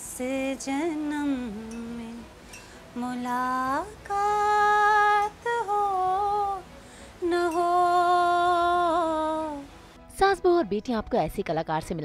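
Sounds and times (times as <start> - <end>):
woman singing long held notes: 0.0 - 9.8.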